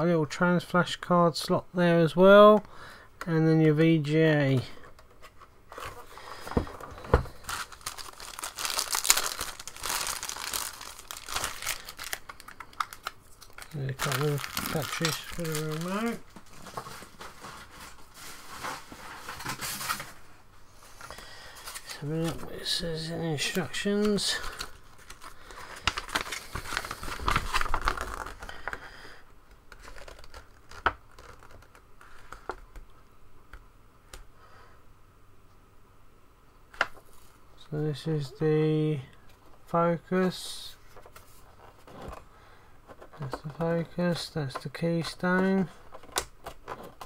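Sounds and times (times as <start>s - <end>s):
plastic bag crinkling: 5.7s - 20.1s, 21.1s - 28.9s, 29.7s - 32.6s
sharp paper crackle: 7.0s - 20.1s, 21.6s - 28.8s, 29.7s - 32.6s.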